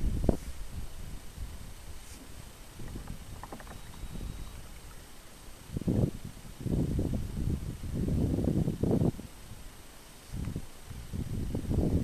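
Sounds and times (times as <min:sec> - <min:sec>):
kayak paddle strokes in water: 0:02.0 - 0:05.4
water lapping at hull: 0:02.2 - 0:05.4.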